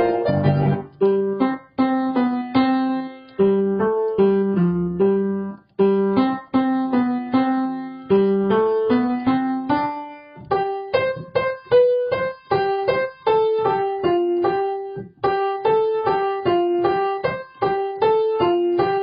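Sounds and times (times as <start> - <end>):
piano playing melody over chords: 0.0 - 19.0.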